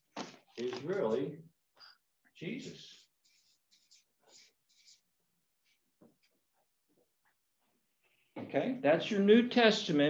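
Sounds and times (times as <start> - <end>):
marker writing on paper: 2.4 - 6.7.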